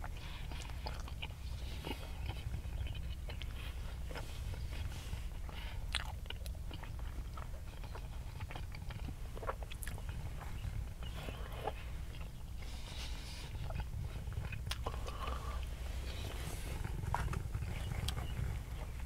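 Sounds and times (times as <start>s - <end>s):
person chewing food: 0.0s - 19.0s
steady low hum: 0.0s - 19.0s.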